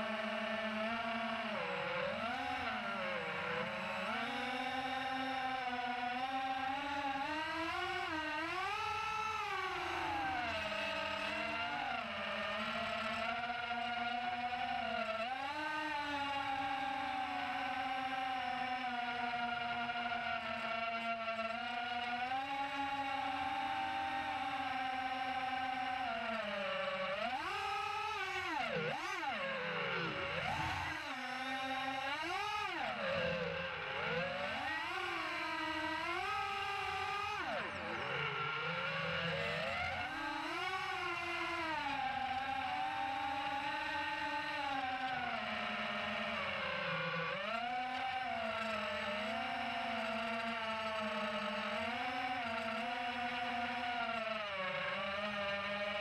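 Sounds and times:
drone motors whining: 0:00.0 - 0:56.0.

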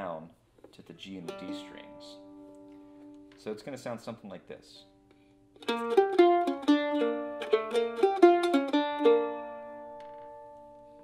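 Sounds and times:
mandolin picking single notes: 0:01.1 - 0:03.8, 0:04.9 - 0:11.0.

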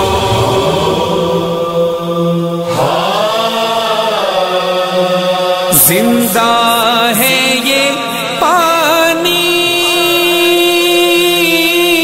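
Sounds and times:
person chanting long notes: 0:00.0 - 0:06.6.

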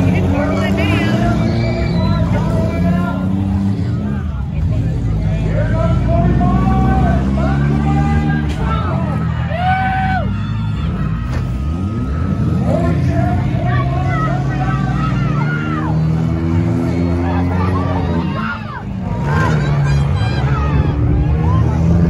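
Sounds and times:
car engines humming: 0:00.0 - 0:22.0
spectators shouting: 0:00.0 - 0:22.0.

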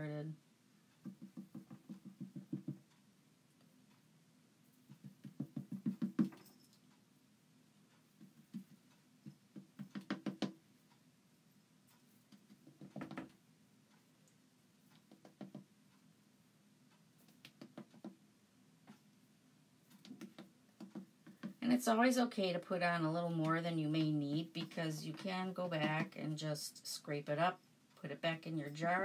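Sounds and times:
squeegee tapping on stencil: 0:01.0 - 0:02.9, 0:04.9 - 0:06.4, 0:09.5 - 0:10.6, 0:12.4 - 0:13.3, 0:15.0 - 0:15.7.

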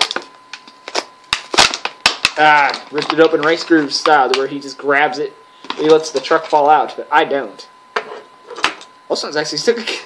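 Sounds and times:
blister package ripped open: 0:00.9 - 0:03.7.

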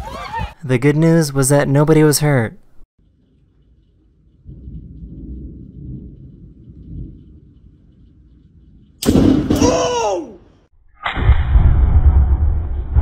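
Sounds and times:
thunder rumbling: 0:03.0 - 0:09.8, 0:11.1 - 0:13.0
loud thunder crack: 0:04.4 - 0:07.6, 0:11.1 - 0:13.0
person crying out: 0:09.6 - 0:10.5.

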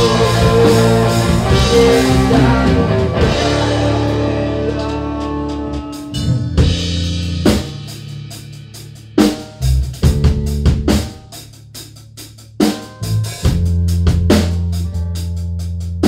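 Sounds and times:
drum kit hits: 0:00.0 - 0:15.0
low bass notes: 0:00.0 - 0:16.0.

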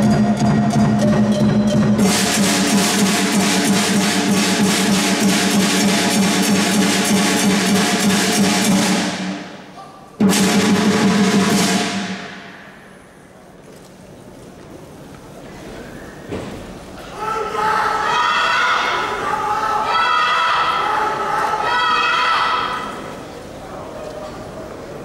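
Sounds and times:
drums and cymbals fast rhythm: 0:00.0 - 0:09.6, 0:10.2 - 0:12.6
loud cymbal crash: 0:02.0 - 0:13.4.

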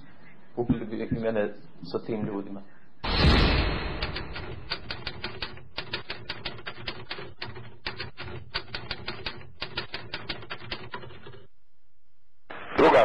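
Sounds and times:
typewriter key clicks: 0:04.1 - 0:11.4.

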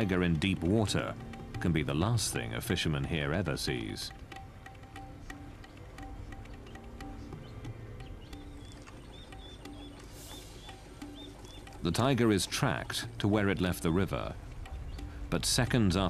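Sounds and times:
soft held low music notes: 0:00.0 - 0:16.0.

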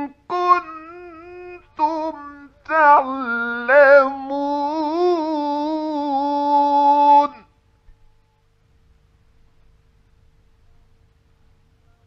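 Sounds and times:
man reciting in long melodic note: 0:00.0 - 0:07.5.

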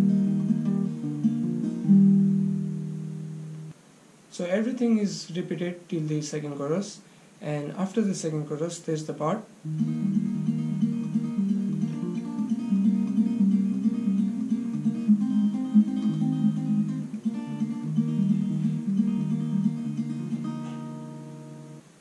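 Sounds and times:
fingerpicked acoustic guitar: 0:00.0 - 0:03.8, 0:09.5 - 0:22.0.

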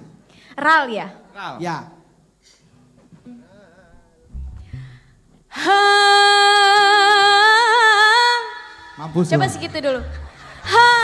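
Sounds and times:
person humming a tune: 0:03.2 - 0:06.2
low thuds: 0:04.0 - 0:05.6.

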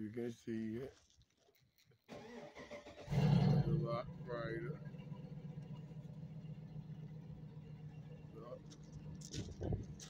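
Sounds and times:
vehicle engine idling: 0:03.1 - 0:10.0.

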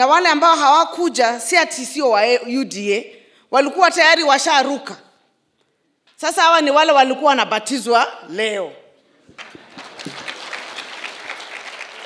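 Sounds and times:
audience applauding: 0:09.3 - 0:12.0.

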